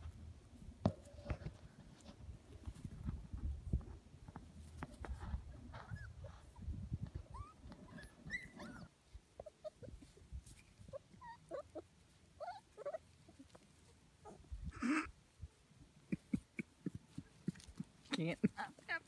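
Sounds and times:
puppies yipping and whimpering: 5.8s - 13.6s
puppy yelp: 7.3s - 10.1s, 10.9s - 13.4s.

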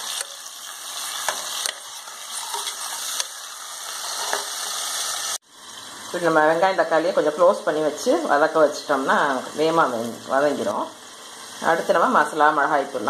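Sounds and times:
vegetables sizzling in hot oil: 0.0s - 13.0s.

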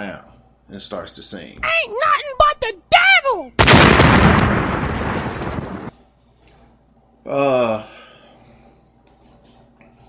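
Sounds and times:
explosion rushing noise: 3.6s - 5.9s.

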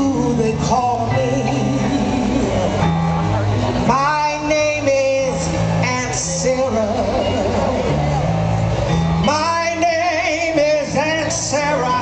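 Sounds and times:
live band music over a pa: 0.0s - 12.0s
sustained bass notes: 0.0s - 12.0s.

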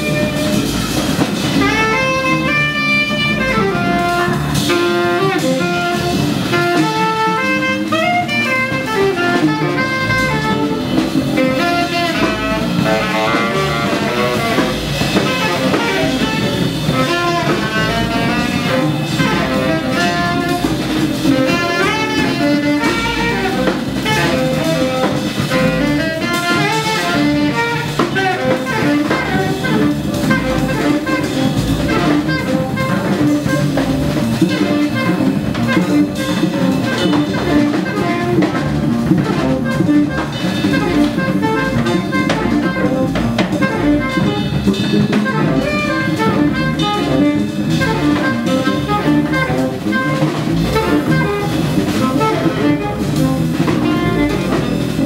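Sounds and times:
double bass: 0.0s - 55.0s
drum kit with cymbals: 0.0s - 55.0s
saxophone playing fast runs: 0.0s - 55.0s.

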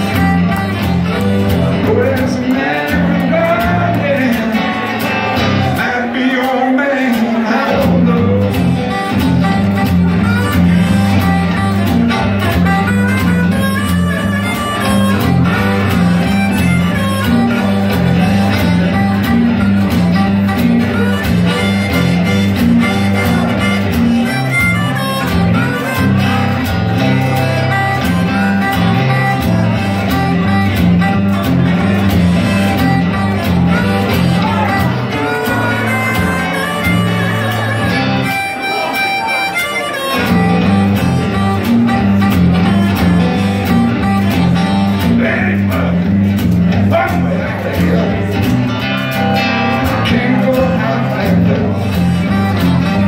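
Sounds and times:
acoustic guitar blues rhythm: 0.0s - 53.0s
harmonica bending notes: 0.0s - 53.0s
man singing: 1.4s - 9.6s, 33.8s - 37.6s, 44.9s - 46.1s, 49.6s - 53.0s.

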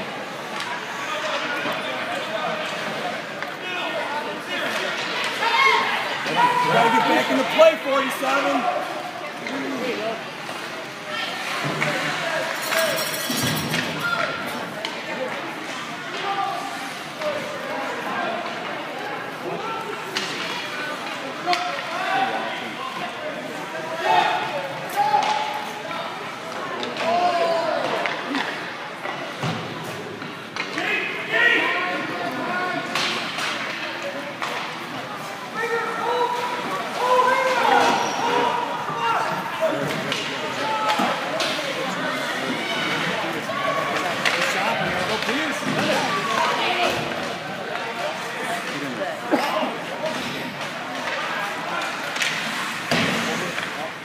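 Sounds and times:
spectators' voices and calls: 0.0s - 54.0s
puck and sticks knocking boards: 44.0s - 47.1s, 51.8s - 53.8s.

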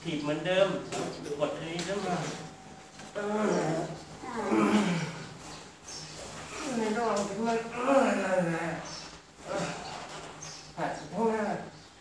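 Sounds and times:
man groaning with strain: 3.2s - 5.2s, 7.7s - 8.8s.

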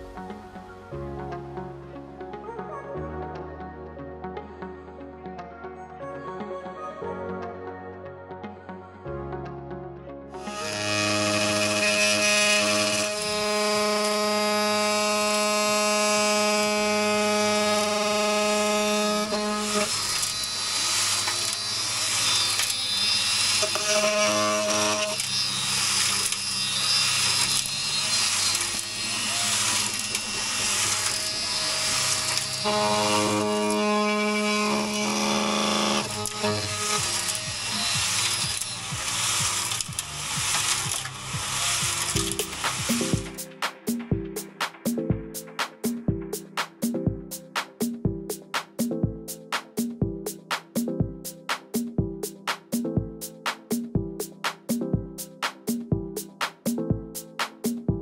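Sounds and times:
background music: 0.0s - 58.0s
cordless power tool buzzing: 10.4s - 43.4s.

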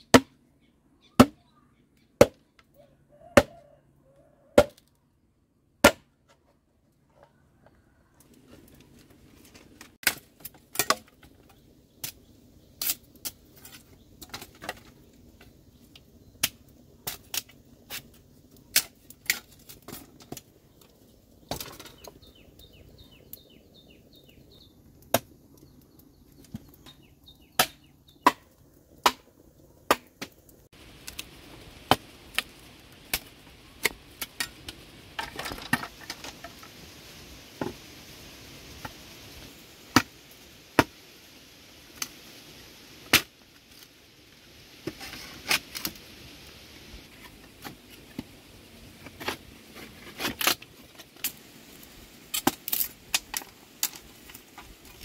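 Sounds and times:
machete chopping bamboo: 1.2s - 1.4s, 2.2s - 2.4s, 4.6s - 4.8s, 5.8s - 6.1s, 27.6s - 29.3s, 29.9s - 30.3s.

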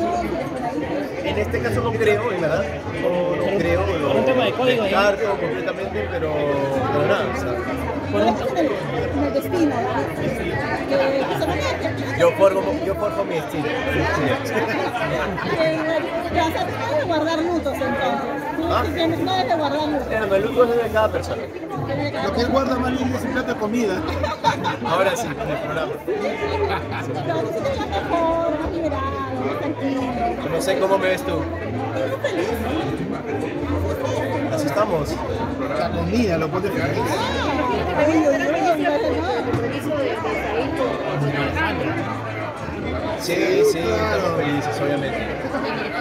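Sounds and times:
crowd chatter in large room: 0.0s - 46.0s.

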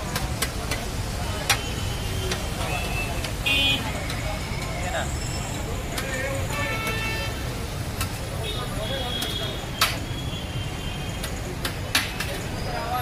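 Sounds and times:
traffic rumble: 0.0s - 13.0s
voices: 0.0s - 13.0s
vehicle horn toot: 2.8s - 3.8s, 6.5s - 7.4s.

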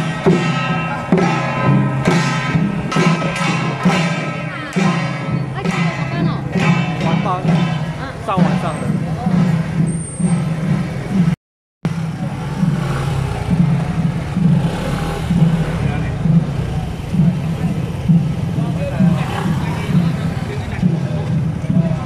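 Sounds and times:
music: 0.0s - 11.4s
voices: 0.0s - 11.4s, 12.0s - 22.0s
vehicle engine running: 10.9s - 22.0s.

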